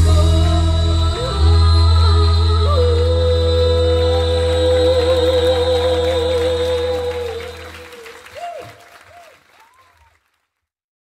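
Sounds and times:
backing track bass: 0.0 - 7.6
faint applause: 3.2 - 10.6.

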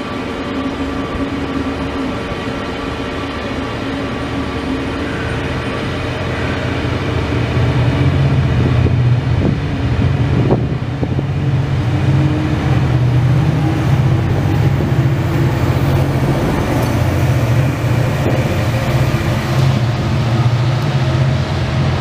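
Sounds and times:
train wheels rumbling on rails: 0.0 - 22.0.

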